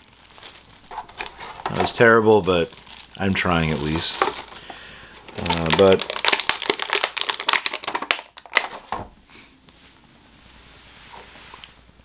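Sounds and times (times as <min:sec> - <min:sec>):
plastic packaging crinkling: 0:00.0 - 0:09.0.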